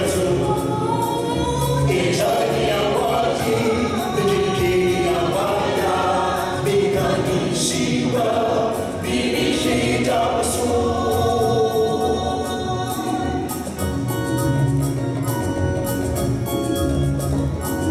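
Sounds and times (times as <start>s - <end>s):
choir singing in harmony: 0.0s - 13.9s.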